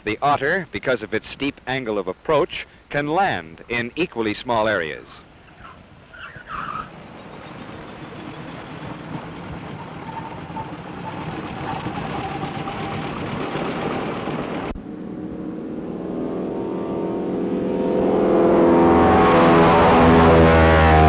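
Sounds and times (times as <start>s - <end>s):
propeller aircraft engine running: 5.4s - 21.0s.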